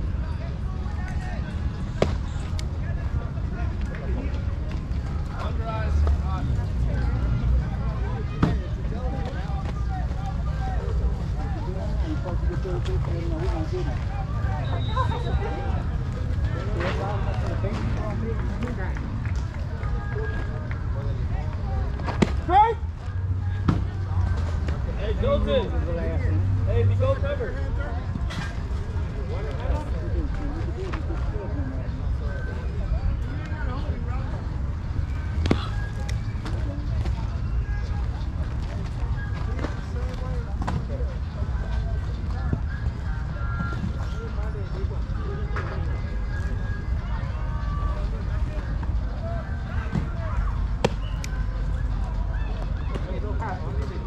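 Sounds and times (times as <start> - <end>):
players chattering and calling: 0.0 - 54.0.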